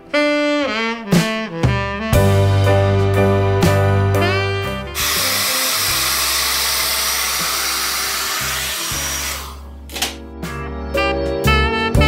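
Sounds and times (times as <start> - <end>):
background music: 0.0 - 12.0
hair dryer blowing: 5.0 - 9.6.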